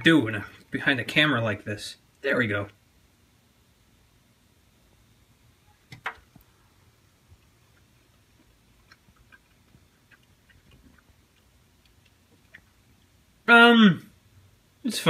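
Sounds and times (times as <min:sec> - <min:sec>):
quiet chewing: 0:07.2 - 0:13.2.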